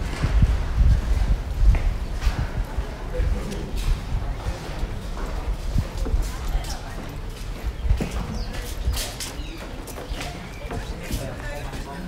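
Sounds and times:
footsteps on stone paving: 0.0s - 12.0s.

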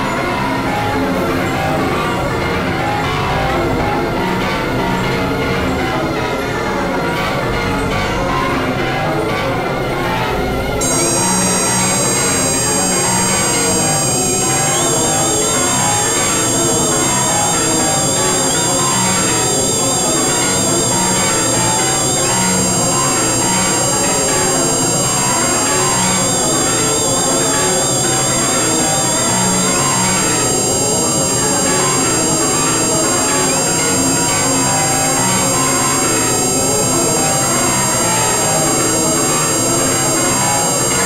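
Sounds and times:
electronic synthesizer drone: 10.8s - 41.0s
high-pitched whines: 10.8s - 41.0s
warbling high tone: 10.8s - 41.0s.

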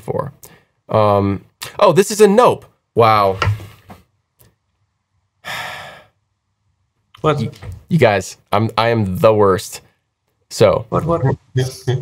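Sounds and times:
person sighing: 5.4s - 6.2s.

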